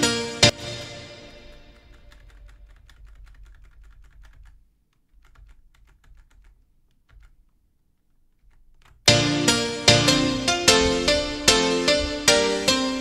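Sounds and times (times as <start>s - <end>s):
keyboard and mouse clicking: 1.7s - 9.1s.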